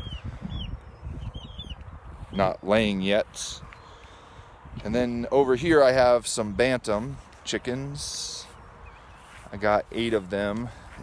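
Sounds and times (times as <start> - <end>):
low rumble on microphone: 0.0 - 3.8
birds chirping: 0.0 - 11.0.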